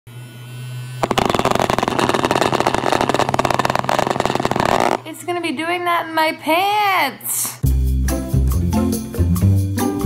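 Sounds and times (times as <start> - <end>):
rapid rattling buzz: 1.0 - 5.0
vibrating alarm motor humming: 1.0 - 5.0.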